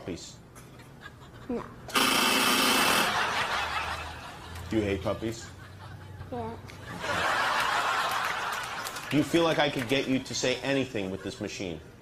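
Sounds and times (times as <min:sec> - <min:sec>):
group laughing: 0:00.6 - 0:01.7, 0:02.8 - 0:09.4
child saying yeah: 0:06.3 - 0:06.6.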